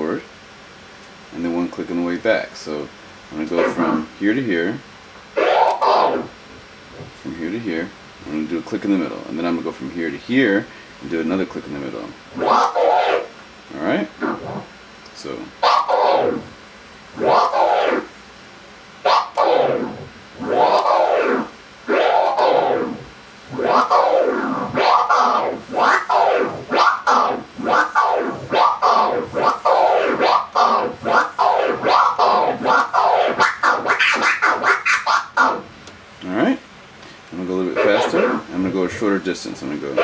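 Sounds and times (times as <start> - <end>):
record scratching on turntable: 3.4 - 7.8, 11.1 - 16.6, 17.2 - 18.1, 19.0 - 35.8, 37.4 - 40.0.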